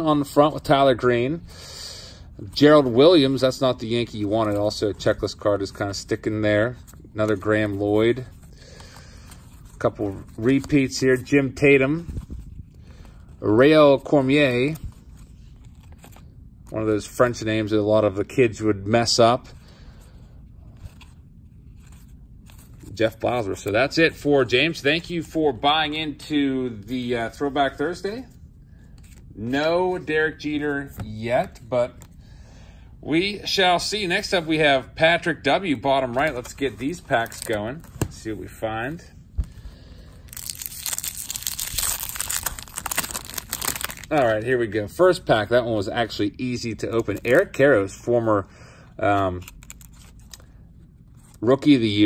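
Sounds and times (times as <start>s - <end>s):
trading cards shuffling: 2.5s - 17.4s, 20.6s - 25.7s, 26.8s - 32.2s, 35.5s - 44.3s, 49.1s - 51.4s
wrapper crinkling and tearing: 36.2s - 37.8s, 40.2s - 44.4s, 49.3s - 50.6s.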